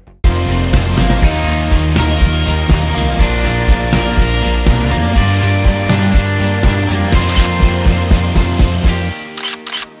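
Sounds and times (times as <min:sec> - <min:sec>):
background music with low beat: 0:00.0 - 0:09.2
short clicks: 0:07.2 - 0:07.6, 0:09.4 - 0:10.0.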